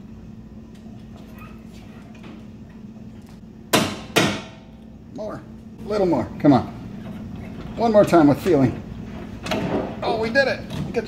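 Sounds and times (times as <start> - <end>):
sharp metallic knocks: 3.7 - 4.6.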